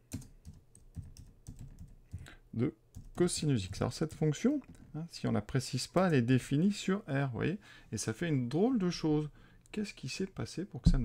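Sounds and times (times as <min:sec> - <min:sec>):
computer keyboard typing: 0:00.1 - 0:02.3, 0:02.9 - 0:04.8.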